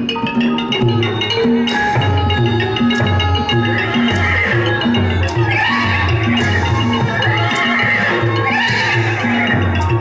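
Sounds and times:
drums: 0.0s - 10.0s
mallet percussion: 0.0s - 10.0s.

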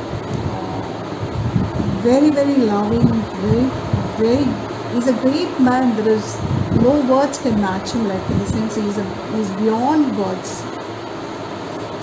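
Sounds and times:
low rumble and hiss: 0.0s - 12.0s.

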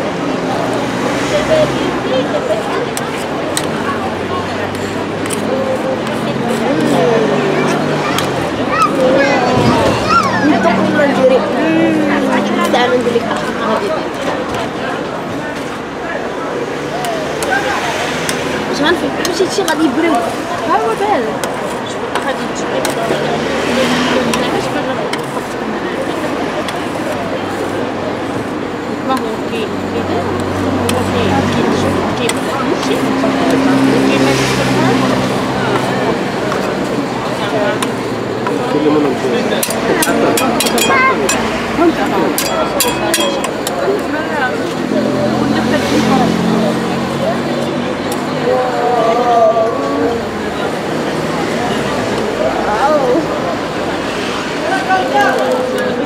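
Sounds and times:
people talking: 0.0s - 56.0s
metal spatulas scraping steel plate: 39.5s - 41.5s, 42.4s - 43.7s.

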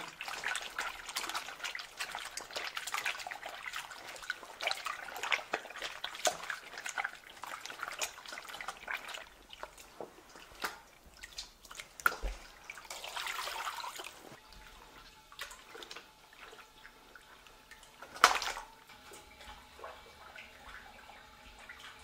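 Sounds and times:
wet squelching and splashing: 0.0s - 22.0s.

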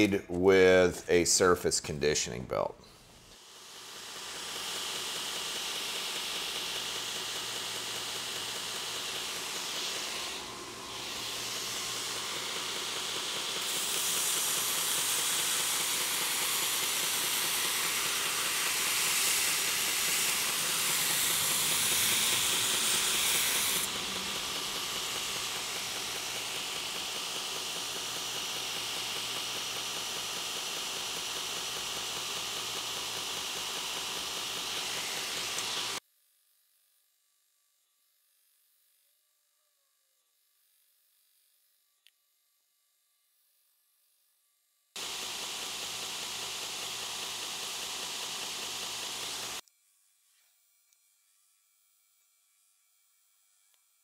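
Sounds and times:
belt grinder motor and belt hiss: 3.2s - 36.0s, 45.0s - 49.6s.

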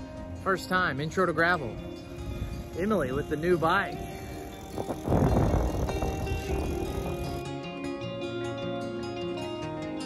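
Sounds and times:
background music of held notes: 0.0s - 10.0s
bicycle rolling noise: 1.6s - 7.5s
wind rumbling on microphone: 2.1s - 7.4s.

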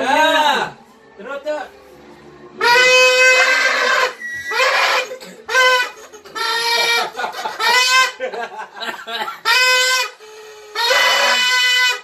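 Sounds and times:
party horns blowing: 2.6s - 8.3s, 9.4s - 12.0s.

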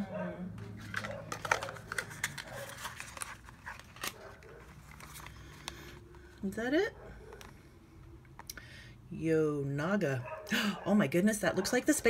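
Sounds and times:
small items clicking and rustling: 0.6s - 6.2s.

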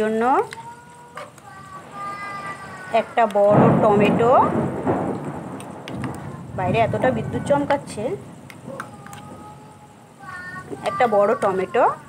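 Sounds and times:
loud thunder rumble: 1.8s - 8.8s.

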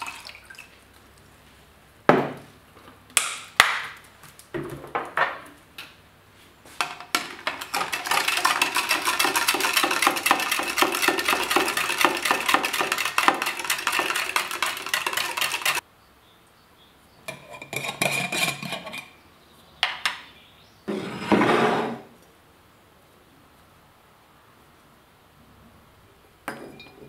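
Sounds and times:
spoon clinking in a glass: 26.5s - 27.0s.

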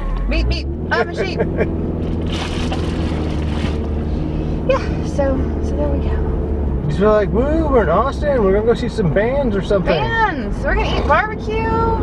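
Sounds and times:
car engine and road hum: 0.0s - 12.0s.

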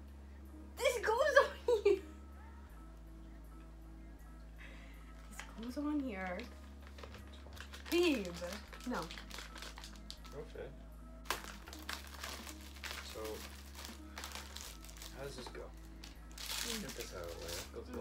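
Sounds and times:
background music: 0.0s - 18.0s
plastic icing bag crinkling: 5.4s - 10.4s, 11.3s - 18.0s.

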